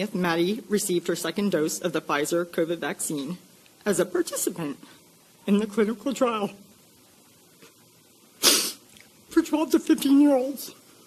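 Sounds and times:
woman sharp breath: 0:08.4 - 0:08.8.

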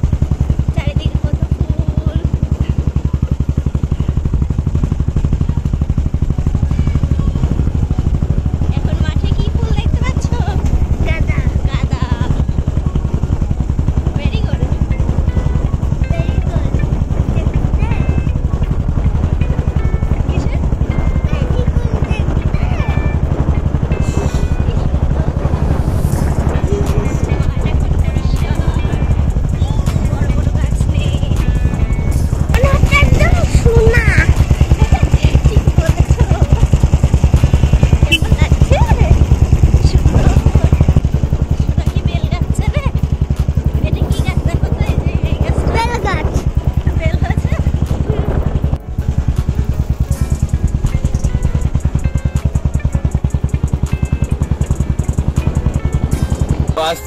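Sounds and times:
music: 0:00.0 - 0:57.0
small vehicle engine running: 0:00.0 - 0:57.0
voices: 0:00.0 - 0:57.0.

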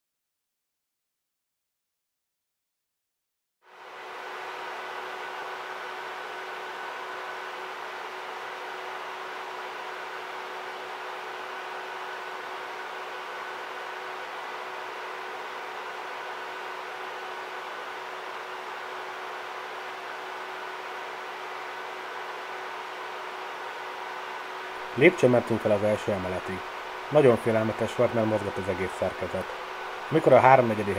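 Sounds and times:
faint hum tones: 0:03.7 - 0:30.9
steady hiss: 0:24.8 - 0:30.9.

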